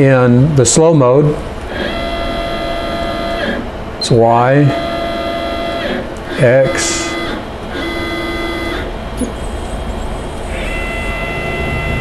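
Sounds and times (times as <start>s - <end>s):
motor whining at steady pitch: 0.0s - 12.0s
higher motor whine: 0.6s - 12.0s.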